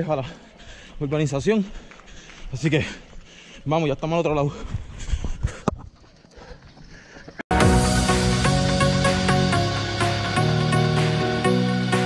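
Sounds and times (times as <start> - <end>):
footsteps on asphalt: 0.2 - 7.4.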